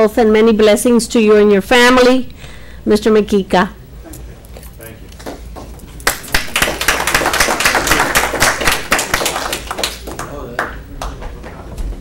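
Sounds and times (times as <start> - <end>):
crowd applauding: 6.0 - 11.2.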